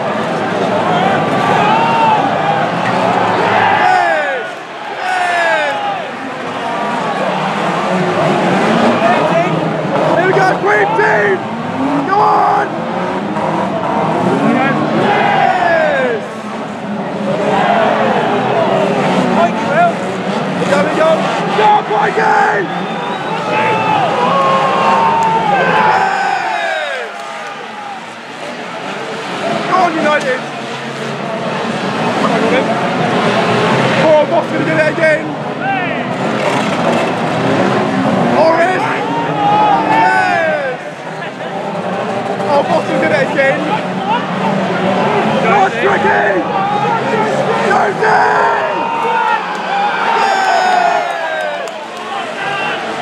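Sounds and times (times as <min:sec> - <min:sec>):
racing car engines revving: 0:00.0 - 0:53.0.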